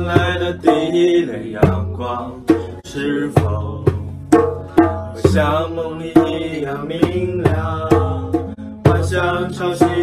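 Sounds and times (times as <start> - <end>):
hand drum: 0.0 - 10.0
men singing: 0.0 - 10.0
strummed acoustic guitar: 0.0 - 10.0.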